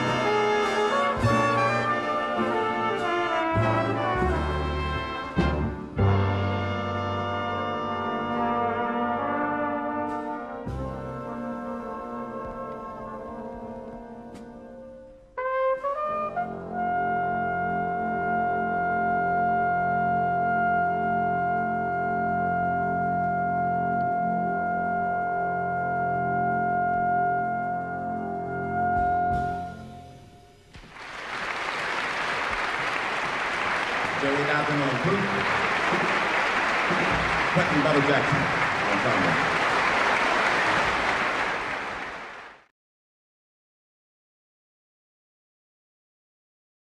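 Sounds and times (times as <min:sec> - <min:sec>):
big band brass chord: 0:00.0 - 0:11.5
flugelhorn playing: 0:00.0 - 0:30.5
audience applauding: 0:30.8 - 0:42.7.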